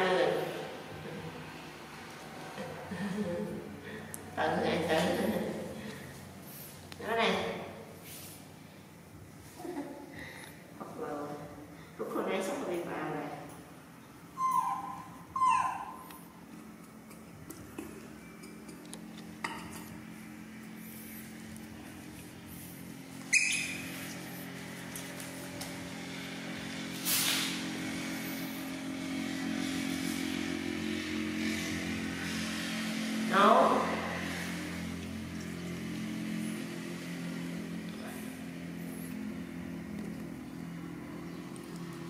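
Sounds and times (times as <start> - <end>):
low mechanical hum: 0.0 - 42.0
short rising squeal: 14.3 - 16.0.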